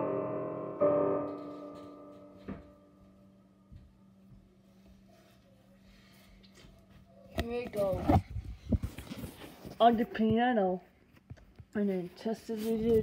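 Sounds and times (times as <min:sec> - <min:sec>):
digital piano chord: 0:00.0 - 0:03.3.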